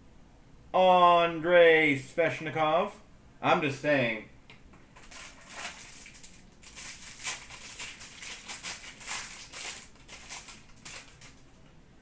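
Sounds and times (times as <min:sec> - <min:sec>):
foil wrapper crinkling: 0:04.9 - 0:11.6.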